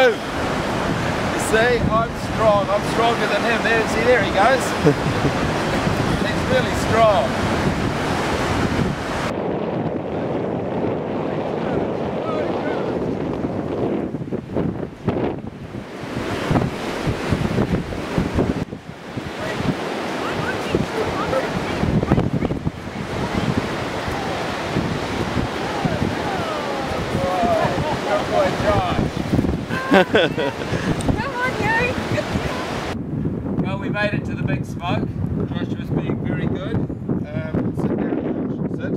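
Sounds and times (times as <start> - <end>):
surf washing on beach: 0.0 - 33.0
wind buffeting microphone: 0.0 - 38.9.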